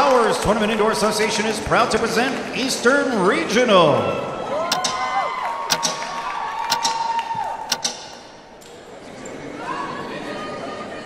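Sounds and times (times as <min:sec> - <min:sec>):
audience cheering and whooping: 0:04.4 - 0:07.7
sharp knocks: 0:04.7 - 0:07.1, 0:07.7 - 0:08.4.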